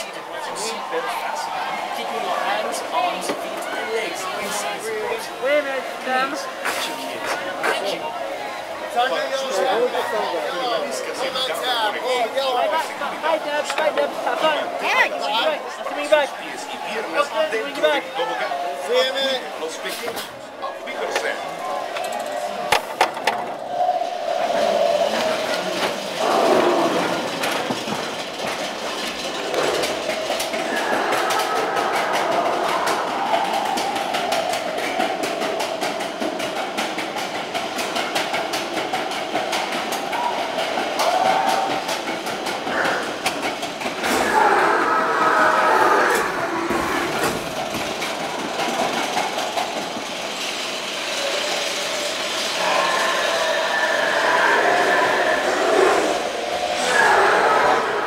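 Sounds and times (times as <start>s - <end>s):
roller coaster wheels clattering on rail: 0.0s - 58.0s.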